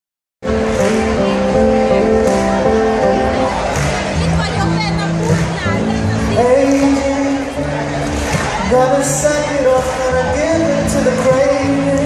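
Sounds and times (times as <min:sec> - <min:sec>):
live band music: 0:00.4 - 0:12.0.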